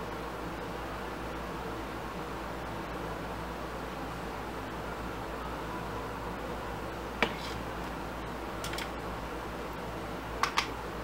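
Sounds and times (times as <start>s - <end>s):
background hiss with low hum: 0.0s - 11.0s.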